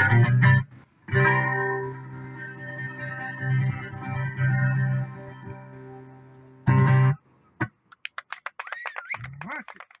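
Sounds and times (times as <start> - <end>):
acoustic song: 0.0 - 7.8
audience hand claps: 7.9 - 10.0.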